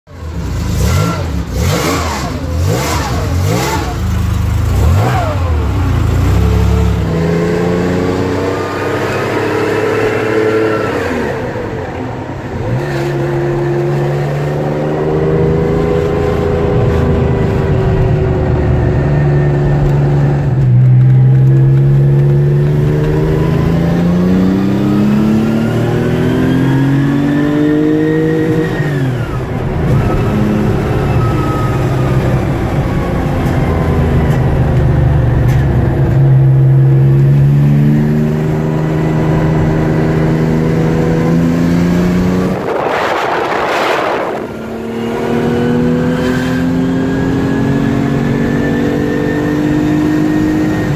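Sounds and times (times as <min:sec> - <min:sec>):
car engine revving through gears: 0:00.2 - 0:50.9.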